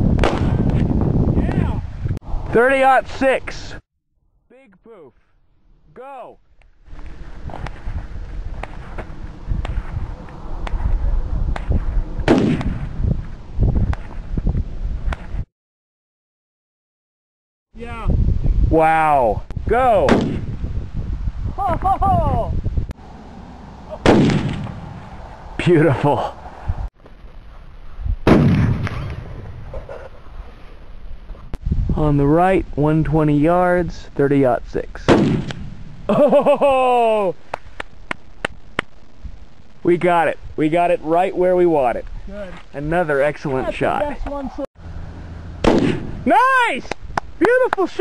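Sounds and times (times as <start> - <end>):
wind buffeting microphone: 0.0 - 2.9, 6.8 - 15.5, 17.8 - 36.1, 39.2 - 48.0
loud gunshot: 0.2 - 0.7, 12.2 - 12.9, 20.0 - 20.5, 24.0 - 25.0, 28.2 - 29.6, 35.1 - 35.8, 45.6 - 46.3
rifle shot: 0.2 - 0.7, 12.2 - 12.9, 20.1 - 20.5, 24.0 - 25.0, 28.2 - 29.6, 35.1 - 35.8, 45.6 - 46.2
faint sharp cracks: 35.1 - 35.6.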